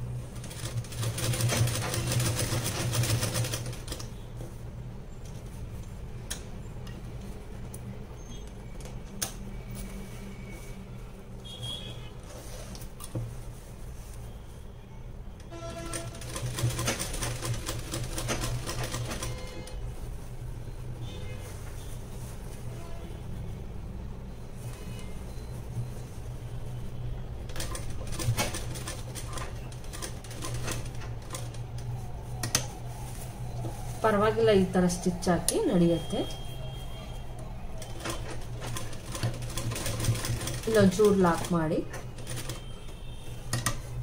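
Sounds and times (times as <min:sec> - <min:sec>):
sewing machine stitching: 0:00.4 - 0:04.0, 0:15.6 - 0:19.7, 0:37.8 - 0:42.7.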